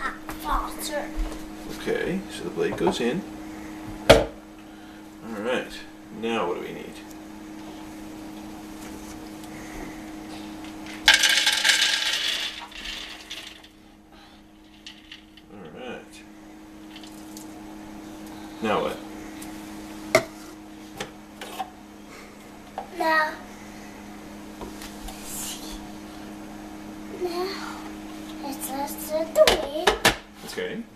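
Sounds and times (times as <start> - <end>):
peanuts clattering into plastic bowl: 11.0 - 13.7.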